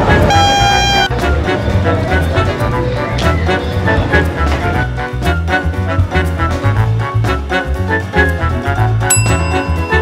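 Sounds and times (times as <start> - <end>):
background music with beat: 0.0 - 10.0
hand horn toot: 0.2 - 1.1.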